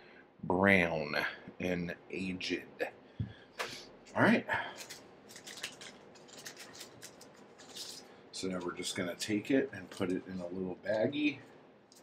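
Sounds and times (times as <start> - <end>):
plastic bag crinkling: 4.7 - 11.0.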